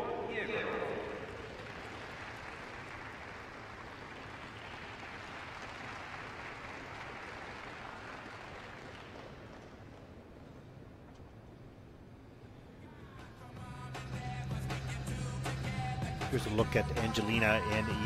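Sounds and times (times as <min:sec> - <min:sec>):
sparse audience applause: 0:00.9 - 0:09.5.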